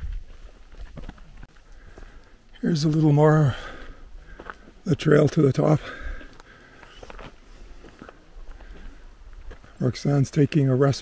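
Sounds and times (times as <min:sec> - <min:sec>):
footsteps on rocky dirt trail: 0:00.0 - 0:11.0.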